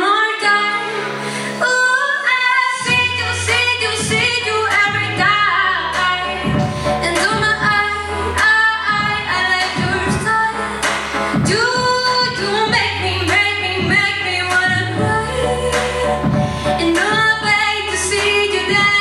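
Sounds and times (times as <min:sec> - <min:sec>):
held low bass: 0:02.9 - 0:19.0.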